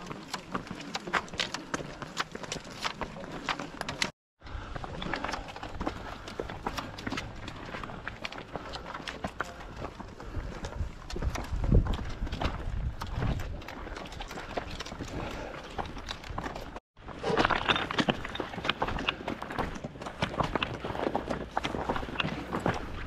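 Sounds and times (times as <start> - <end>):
footsteps on rocky path: 0.0 - 23.0
trekking poles clicking on stone: 0.0 - 23.0.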